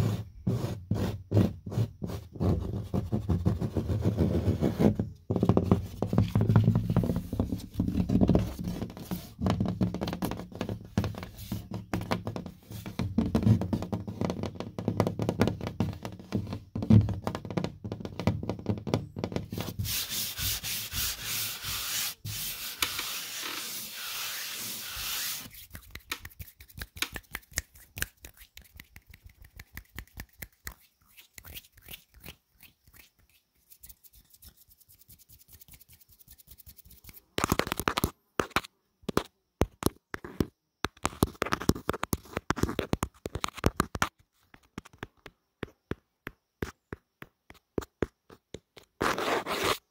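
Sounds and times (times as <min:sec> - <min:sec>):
fingers rubbing on drywall: 0:00.0 - 0:37.4, 0:41.1 - 0:49.9.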